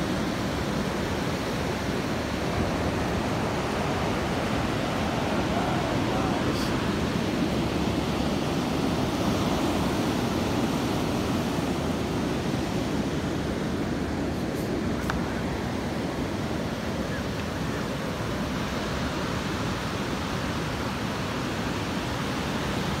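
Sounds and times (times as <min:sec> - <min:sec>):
ocean surf breaking on beach: 0:00.0 - 0:23.0.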